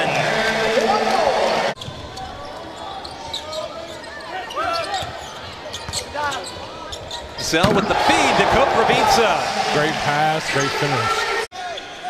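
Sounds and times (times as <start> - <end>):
arena crowd noise: 0.0 - 12.0
sneaker squeaks: 1.8 - 7.8.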